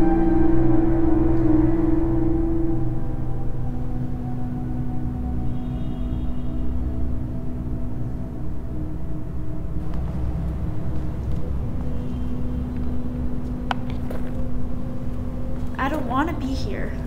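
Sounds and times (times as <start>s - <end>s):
dark ambient drone: 0.0s - 17.0s.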